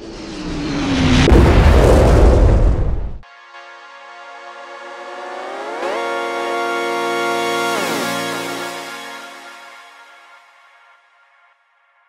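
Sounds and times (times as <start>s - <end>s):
synthesizer chord gliding upward: 3.2s - 11.9s.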